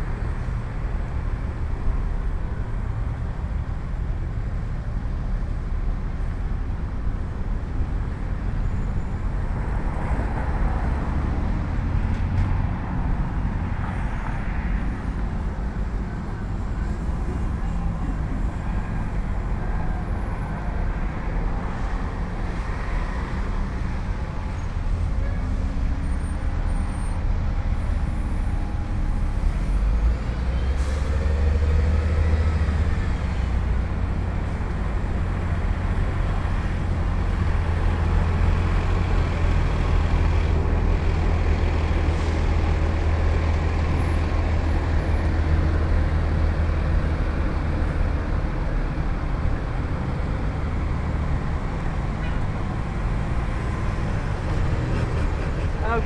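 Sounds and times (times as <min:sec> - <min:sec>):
road traffic rumble: 0:00.0 - 0:56.0.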